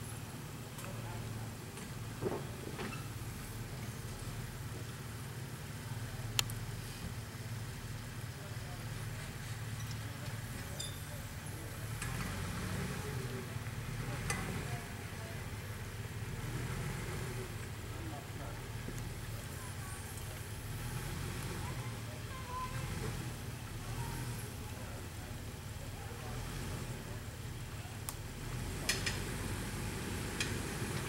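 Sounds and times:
engine running low: 0.0s - 31.0s.

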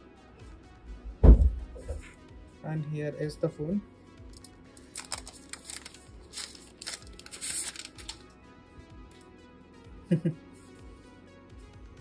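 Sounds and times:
quiet background music: 0.0s - 12.0s
plastic wrap crinkling and tearing: 4.3s - 8.3s.

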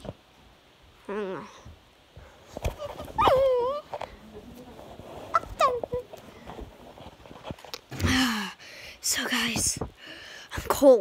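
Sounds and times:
child squealing: 3.1s - 3.8s.

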